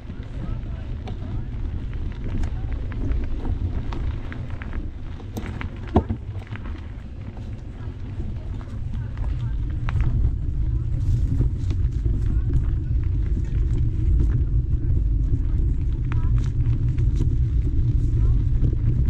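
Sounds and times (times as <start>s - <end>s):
wind rumble on microphone: 0.0s - 19.0s
footsteps on dirt and leaves: 0.1s - 19.0s.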